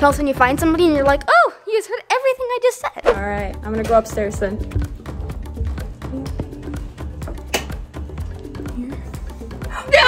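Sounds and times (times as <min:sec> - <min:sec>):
light tapping background music: 0:00.0 - 0:01.3, 0:03.2 - 0:10.0.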